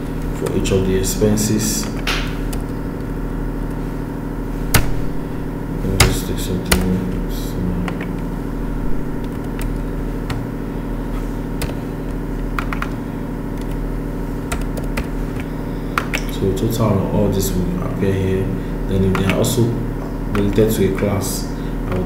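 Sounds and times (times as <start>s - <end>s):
steady low hum: 0.0s - 22.0s
computer keys clicking: 6.0s - 7.0s, 12.5s - 13.0s, 14.4s - 16.3s.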